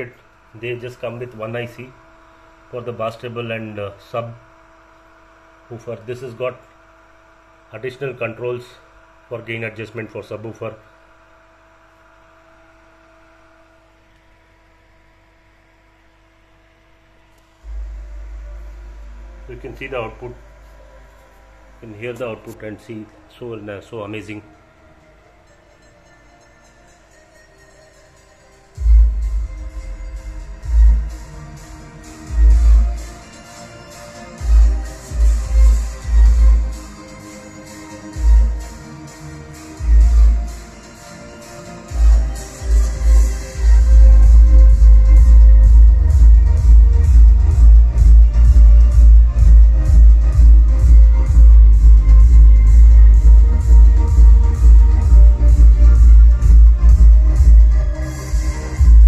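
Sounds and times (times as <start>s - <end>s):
bass-boosted electronic music: 17.5s - 59.0s
deep subwoofer bass hits: 17.6s - 21.8s, 28.8s - 33.2s, 42.9s - 59.0s.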